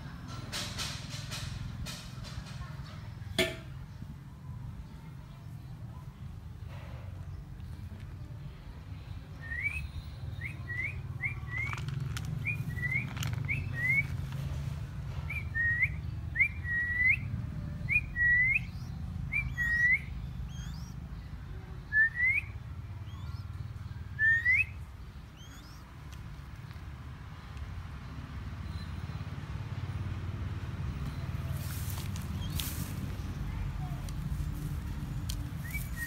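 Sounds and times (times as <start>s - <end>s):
hawk whistled calls: 15.3s - 21.0s, 25.4s - 25.8s.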